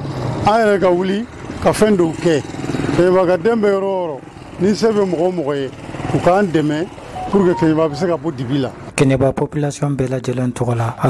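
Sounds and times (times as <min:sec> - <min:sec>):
man speaking: 0:07.2 - 0:08.7.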